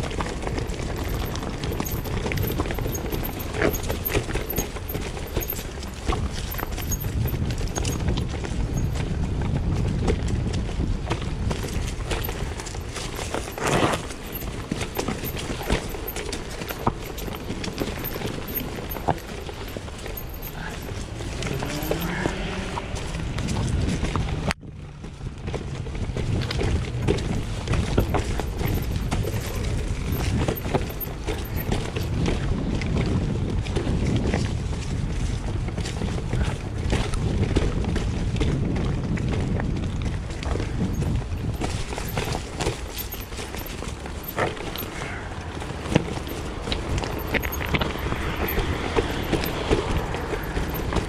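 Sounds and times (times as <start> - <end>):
bike knocking and rattling: 0.0 - 51.0
bike tyres rumbling over stones: 0.0 - 51.0.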